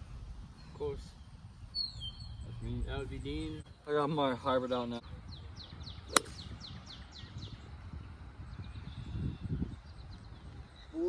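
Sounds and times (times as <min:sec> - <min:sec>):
bird chirping: 0:00.6 - 0:04.2, 0:05.0 - 0:11.0
golf club striking ball: 0:06.1 - 0:06.5.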